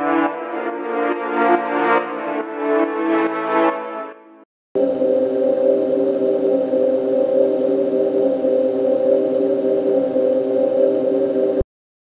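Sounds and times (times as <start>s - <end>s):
sustained dark ambient chord: 4.8s - 11.6s.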